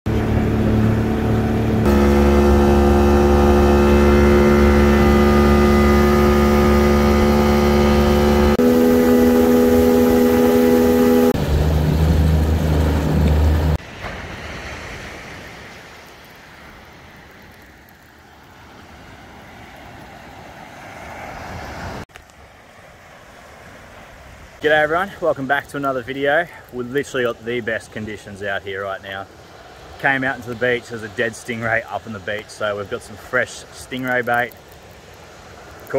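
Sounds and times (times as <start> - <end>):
boat motor humming: 0.1 - 13.8.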